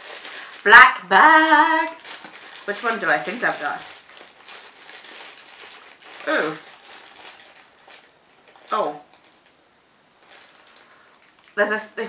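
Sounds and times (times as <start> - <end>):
foil bag crinkling: 0.0 - 9.6, 10.2 - 11.6.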